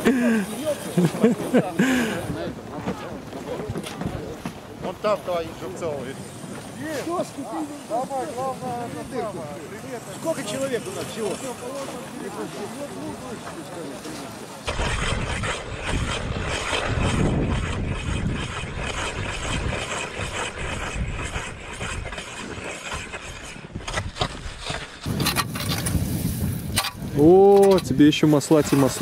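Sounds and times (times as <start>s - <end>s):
people talking: 0.0s - 14.7s, 27.1s - 29.0s
hand ice auger grinding: 10.0s - 29.0s.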